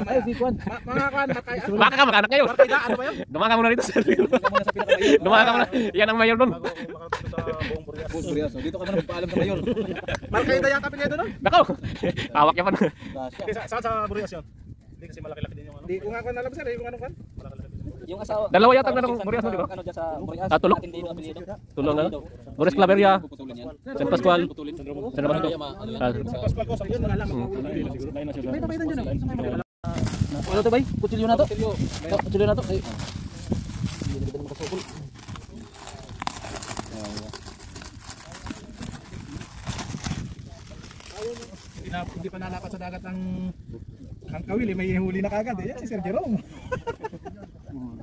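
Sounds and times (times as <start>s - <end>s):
plastic wrap crinkling: 29.9s - 42.7s.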